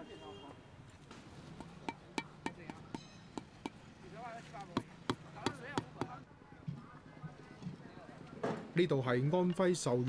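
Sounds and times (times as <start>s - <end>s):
mallet knocking on bricks: 1.6s - 3.8s, 4.7s - 6.2s.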